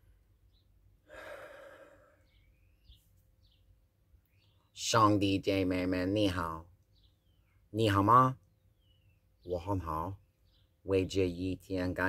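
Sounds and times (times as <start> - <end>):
man sighing: 1.0 - 2.3.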